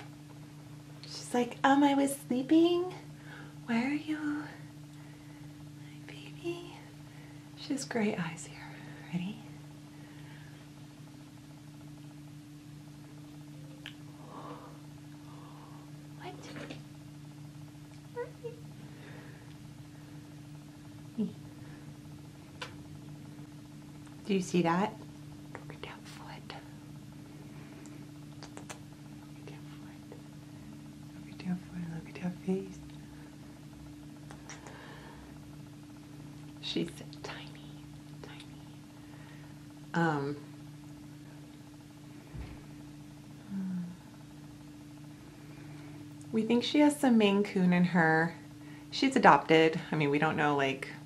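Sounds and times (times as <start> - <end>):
low murmured sounds: 0.0 - 50.5
low electrical hum: 0.0 - 51.0
person whispering: 25.6 - 26.7, 29.4 - 30.2, 37.1 - 38.8, 43.4 - 44.0.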